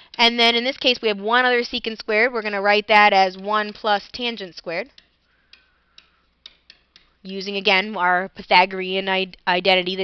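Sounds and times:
low hiss: 0:00.0 - 0:10.0
stylus tapping pen tablet: 0:02.5 - 0:07.3.

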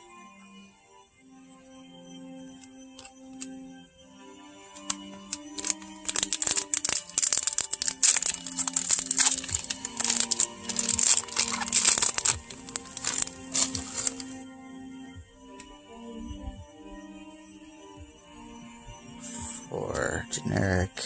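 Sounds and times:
soft background music: 0:00.0 - 0:21.0
foil wrapper crinkling and tearing: 0:04.8 - 0:14.4.

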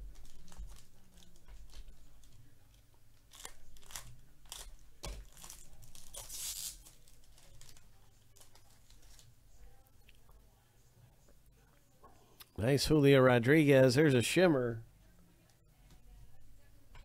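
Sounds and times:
foil wrapper tearing: 0:00.1 - 0:02.4, 0:03.2 - 0:09.3
cards rustling: 0:03.2 - 0:09.3.

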